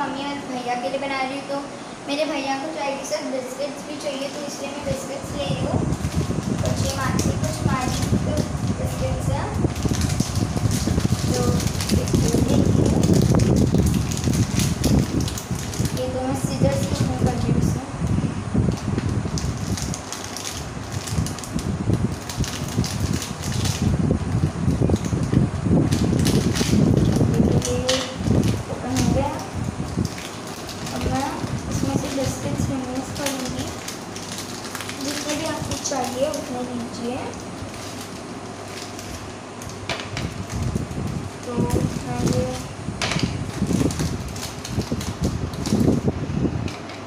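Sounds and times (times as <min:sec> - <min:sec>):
person speaking: 0:00.0 - 0:09.8, 0:11.0 - 0:13.0, 0:15.9 - 0:18.2, 0:27.2 - 0:29.7, 0:30.8 - 0:33.9, 0:34.9 - 0:37.5, 0:41.4 - 0:42.8
plastic wrapper crinkling: 0:04.1 - 0:17.6, 0:18.7 - 0:47.0.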